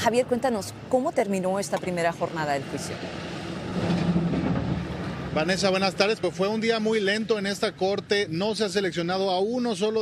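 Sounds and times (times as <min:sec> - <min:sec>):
vehicle passing on street: 0:00.0 - 0:09.4.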